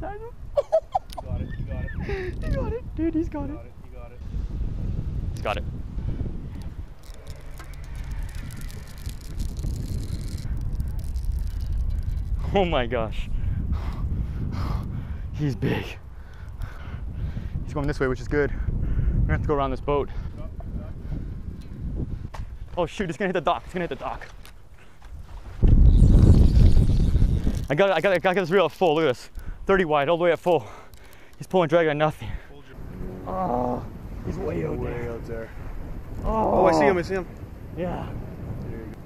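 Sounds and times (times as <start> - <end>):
wind rumbling on microphone: 0.0 - 39.0
fishing reel drag clicking: 6.5 - 12.4.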